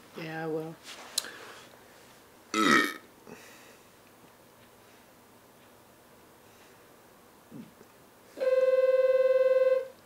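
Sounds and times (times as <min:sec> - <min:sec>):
woman burping: 0:02.5 - 0:03.1.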